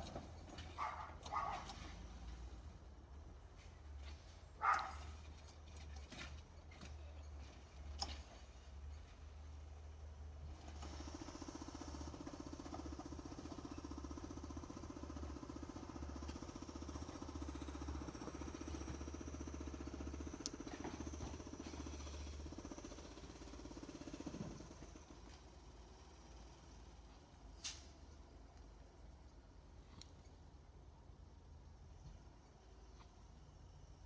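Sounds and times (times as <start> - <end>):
garbage truck engine rumbling: 0.0 - 8.0.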